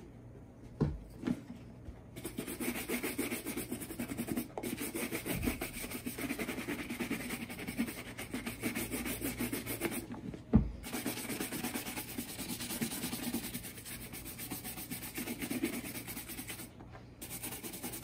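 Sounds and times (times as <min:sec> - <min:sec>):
bristle brush scrubbing leather: 0:10.8 - 0:18.0.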